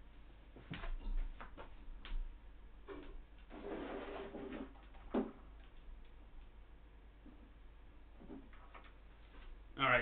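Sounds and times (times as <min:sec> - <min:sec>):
scraping sound: 0:03.5 - 0:04.7.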